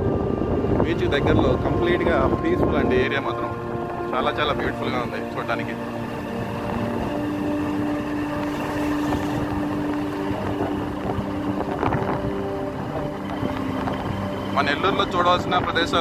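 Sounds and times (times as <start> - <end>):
wind rumbling on microphone: 0.0 - 16.0
motorcycle engine running: 3.0 - 16.0.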